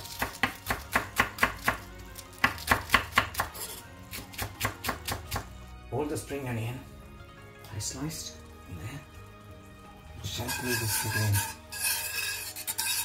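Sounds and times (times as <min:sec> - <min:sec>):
knife chopping on wooden board: 0:00.1 - 0:01.8, 0:02.4 - 0:05.5.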